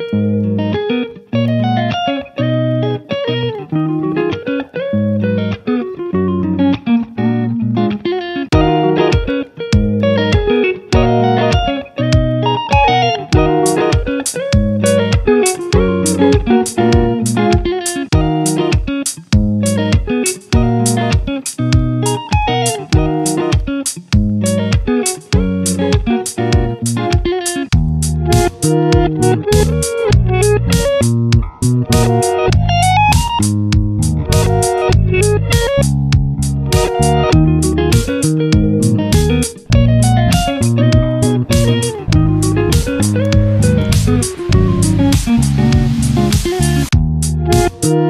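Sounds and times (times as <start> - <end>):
guitar-led instrumental music: 0.0 - 48.0.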